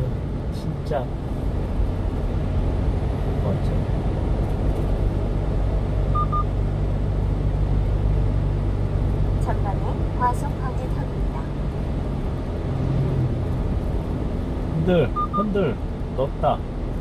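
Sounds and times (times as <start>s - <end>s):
truck engine and road noise: 0.0s - 17.0s
faint beeps: 6.1s - 6.5s, 15.1s - 15.5s.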